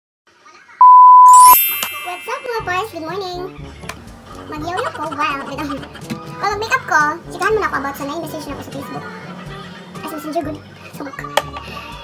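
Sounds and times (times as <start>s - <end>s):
electronic beep: 0.8s - 2.8s
bright chime: 0.8s - 3.3s.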